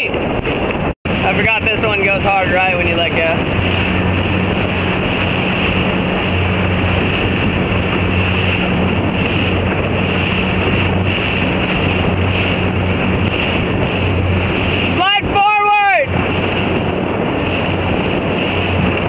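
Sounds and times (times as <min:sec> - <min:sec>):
motorboat engine drone: 0:00.0 - 0:19.0
water rushing past: 0:00.0 - 0:19.0
wind buffeting microphone: 0:00.0 - 0:19.0.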